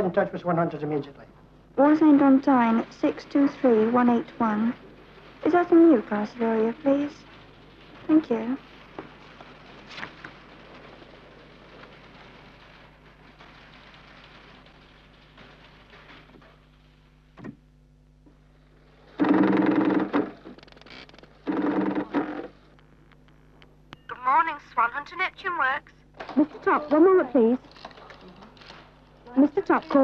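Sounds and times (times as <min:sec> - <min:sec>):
telephone ringing: 0:24.0 - 0:25.4.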